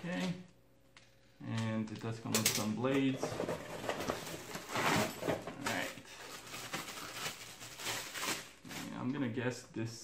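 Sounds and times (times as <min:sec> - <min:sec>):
plastic wrapping crinkling: 0:04.0 - 0:09.2.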